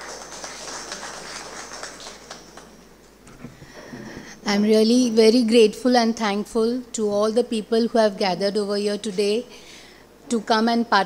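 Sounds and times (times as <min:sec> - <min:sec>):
small audience applauding: 0:00.0 - 0:02.9.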